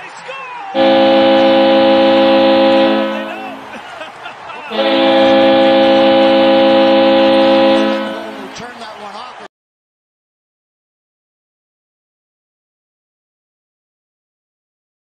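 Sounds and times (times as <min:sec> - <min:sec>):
goal horn blasts: 0:00.8 - 0:03.8, 0:04.7 - 0:08.6.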